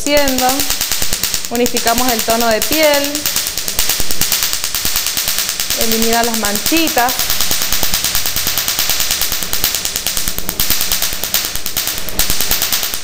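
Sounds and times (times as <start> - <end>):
laser pulses snapping: 0.0 - 13.0.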